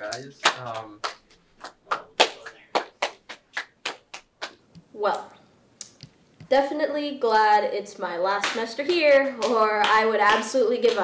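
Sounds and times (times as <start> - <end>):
people clapping: 0.0 - 4.6, 8.4 - 11.0.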